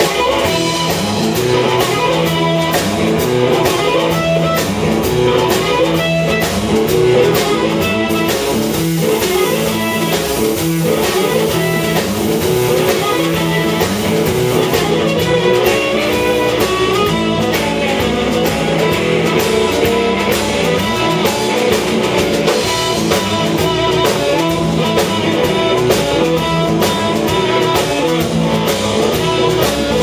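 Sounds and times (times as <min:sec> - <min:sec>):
amplified harmonica: 0:00.0 - 0:30.0
drum kit: 0:00.0 - 0:30.0
electric guitar: 0:00.0 - 0:30.0.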